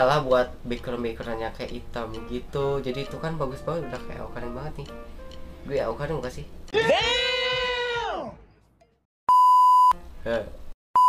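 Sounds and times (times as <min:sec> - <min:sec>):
loud bleep tone: 0:09.3 - 0:10.0.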